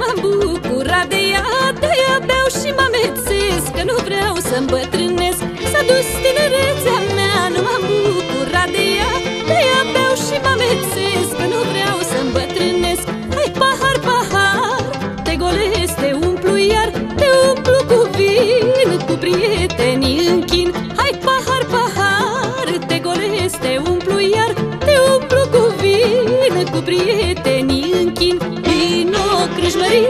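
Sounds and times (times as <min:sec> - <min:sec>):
folk band playing lively melody: 0:00.0 - 0:30.0.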